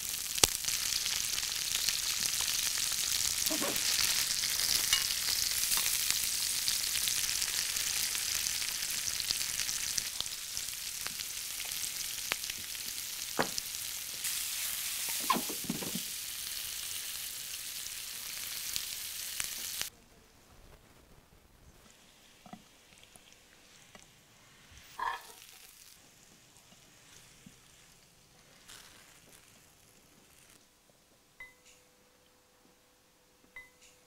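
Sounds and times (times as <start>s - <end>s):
vegetables sizzling in a pan: 0.0s - 19.9s, 21.7s - 30.6s.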